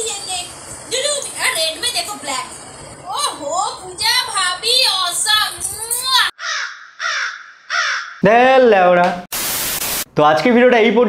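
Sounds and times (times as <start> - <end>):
crow cawing sound effect: 6.4 - 8.2.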